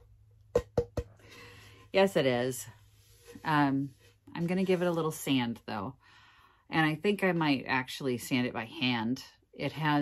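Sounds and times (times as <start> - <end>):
knocks on wooden plate: 0.5 - 1.1.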